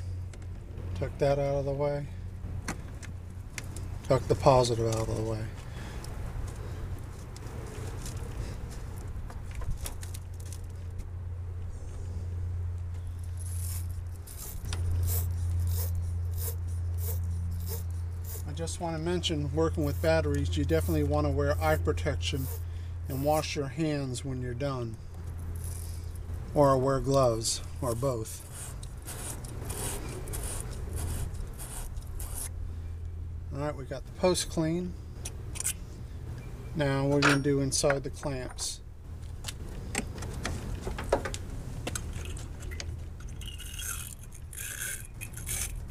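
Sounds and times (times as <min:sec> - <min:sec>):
steady low hum: 0:00.0 - 0:45.9
wire brush scraping battery post: 0:13.3 - 0:18.5, 0:19.8 - 0:23.4, 0:27.8 - 0:32.6, 0:42.0 - 0:45.9.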